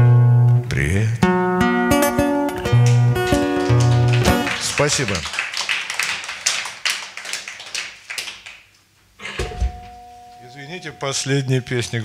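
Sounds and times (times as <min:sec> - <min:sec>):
audience clapping: 0:02.5 - 0:09.0.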